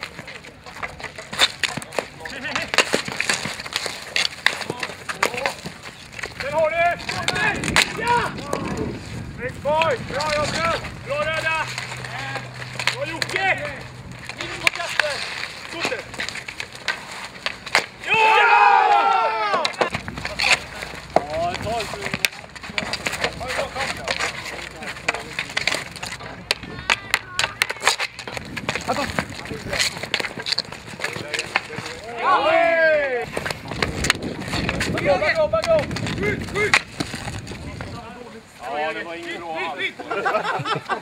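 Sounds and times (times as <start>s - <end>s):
hockey sticks clacking on asphalt: 0.0s - 41.0s
players shouting: 6.4s - 16.1s, 17.7s - 25.5s, 26.2s - 28.1s, 31.0s - 33.5s.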